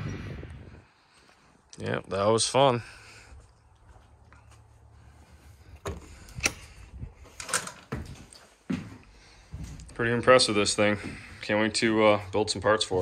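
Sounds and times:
low hum: 0.0s - 1.4s.

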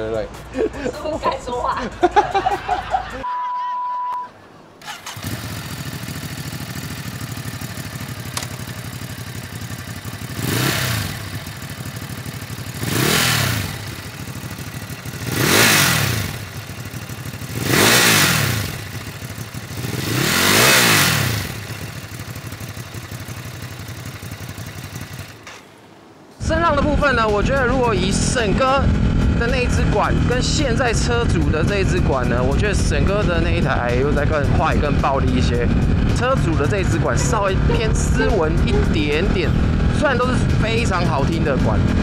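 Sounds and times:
motorcycle engine idling: 4.8s - 25.7s, 26.5s - 42.0s
motorcycle throttle revving: 4.8s - 25.7s, 27.5s - 42.0s.

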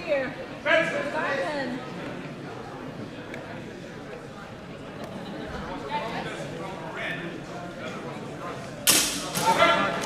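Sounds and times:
quiet voices and murmur: 0.0s - 10.0s.

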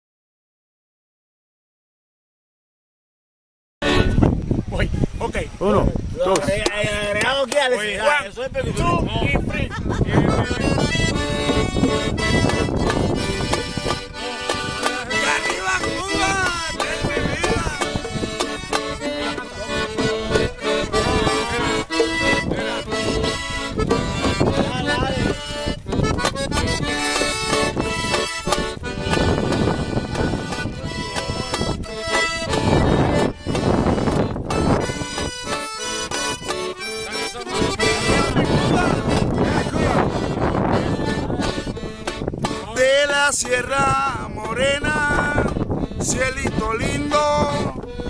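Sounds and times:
accordion playing lively tune: 3.8s - 4.7s, 6.2s - 48.0s
hand drums beaten: 10.3s - 45.6s.

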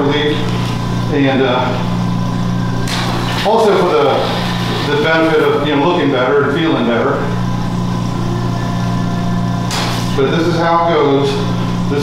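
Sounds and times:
medical equipment low hum: 0.0s - 12.0s.

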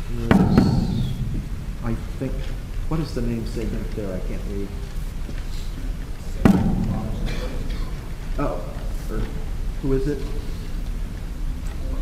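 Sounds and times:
faint voices murmuring: 0.0s - 12.0s
sharp thump: 0.2s - 1.9s, 6.4s - 7.5s.

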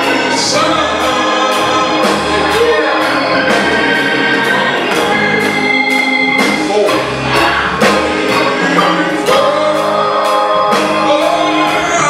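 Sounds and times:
choir singing gospel music: 0.0s - 12.0s
instrumental backing: 0.0s - 12.0s
steady cymbal beat: 0.0s - 12.0s.

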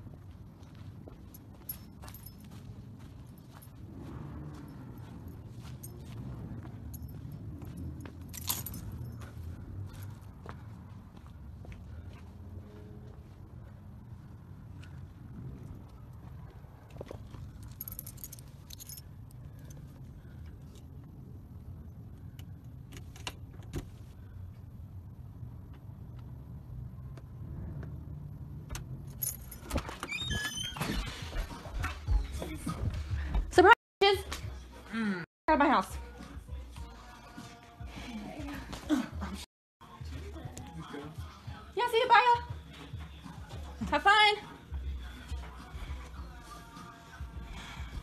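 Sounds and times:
keys jangling: 1.1s - 3.7s, 4.6s - 10.3s, 17.0s - 20.8s, 29.0s - 30.8s
keys jangling in a door lock: 7.9s - 9.3s, 17.5s - 19.8s, 28.7s - 31.0s.

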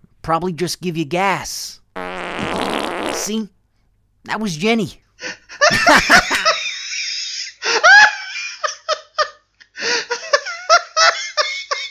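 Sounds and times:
person laughing loudly: 5.5s - 11.9s.

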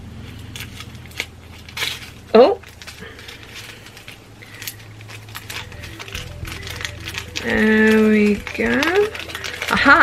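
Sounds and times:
packaging crinkling: 0.2s - 10.0s
packaging tearing: 0.3s - 10.0s.

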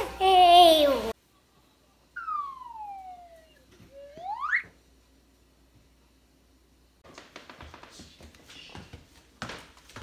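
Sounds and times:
whistle sliding in pitch: 2.2s - 4.7s.

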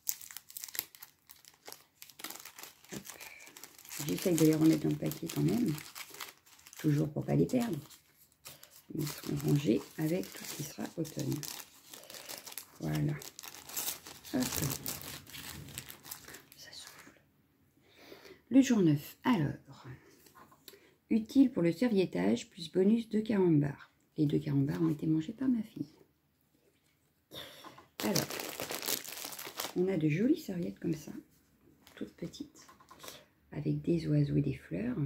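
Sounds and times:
packet crinkling and rustling: 0.0s - 17.1s, 28.0s - 30.8s.

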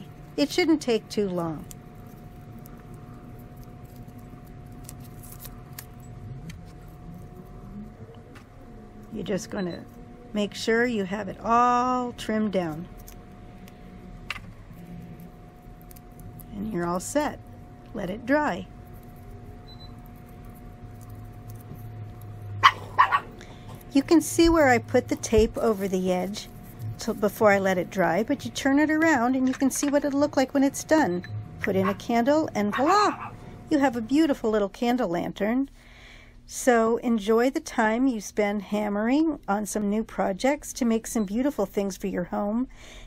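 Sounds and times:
thin steady hum: 0.0s - 43.0s
low rumble: 5.6s - 32.7s
dog barking: 22.6s - 23.4s, 32.7s - 33.4s.

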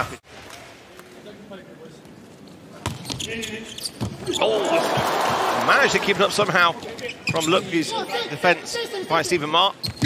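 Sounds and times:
arena crowd noise: 4.2s - 9.6s.

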